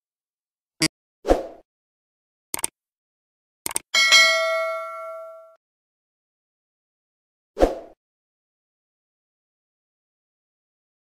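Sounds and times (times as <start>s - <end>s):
sharp clicks: 2.5s - 2.8s, 3.6s - 3.9s
bell ding: 4.0s - 5.6s.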